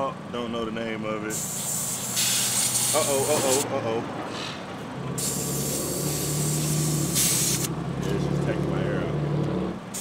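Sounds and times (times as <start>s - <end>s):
compressed air hissing: 1.3s - 3.6s, 5.2s - 7.7s.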